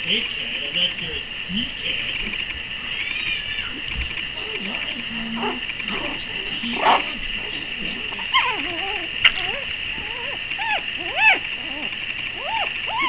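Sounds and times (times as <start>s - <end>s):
puppies squealing: 2.8s - 13.0s
puppies yipping and whining: 3.0s - 13.0s
puppy cry: 4.4s - 13.0s.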